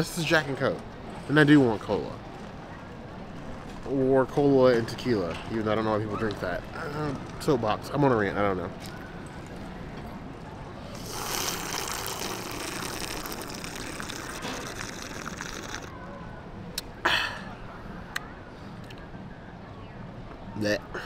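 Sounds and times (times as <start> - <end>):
slurping through a straw: 11.0 - 15.9.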